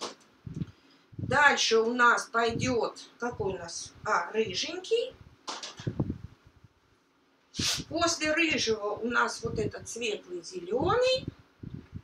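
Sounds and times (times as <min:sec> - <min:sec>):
sharp intake of breath: 0:07.6 - 0:07.9.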